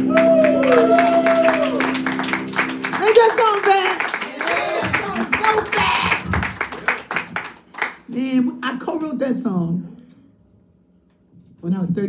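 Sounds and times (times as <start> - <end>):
people clapping: 0.0 - 8.2.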